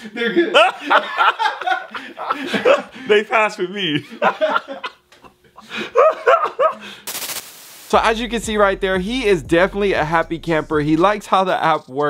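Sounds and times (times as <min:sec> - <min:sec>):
man laughing heartily: 0:00.0 - 0:03.2, 0:04.0 - 0:07.0.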